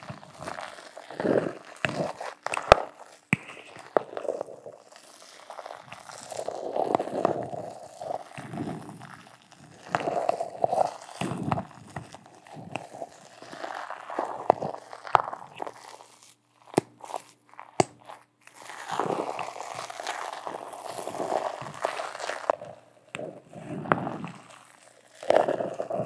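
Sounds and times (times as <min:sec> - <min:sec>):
metal tool scraping crumbly material: 0:00.0 - 0:26.0.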